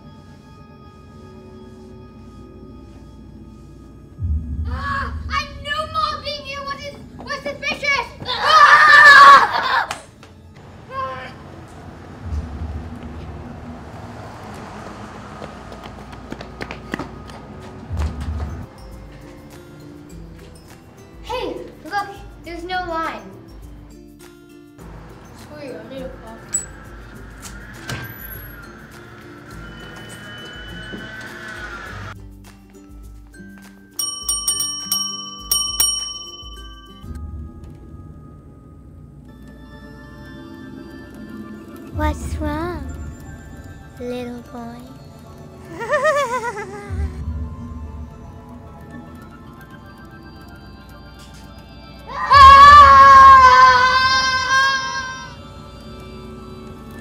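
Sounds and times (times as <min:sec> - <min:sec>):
children calling out: 0:08.1 - 0:10.0, 0:52.1 - 0:55.4
desk service bell dinging: 0:34.0 - 0:37.2.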